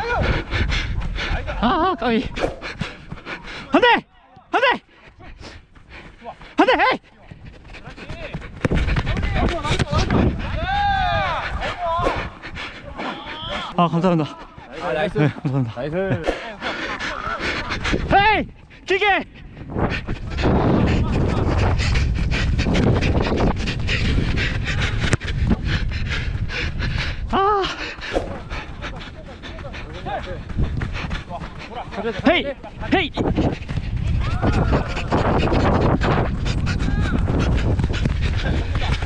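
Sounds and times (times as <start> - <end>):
wind buffeting microphone: 0.0 - 3.8, 7.2 - 39.0
person panting hard: 0.0 - 3.9, 4.8 - 10.6, 11.3 - 39.0
running footsteps thudding: 2.2 - 3.7, 27.9 - 39.0.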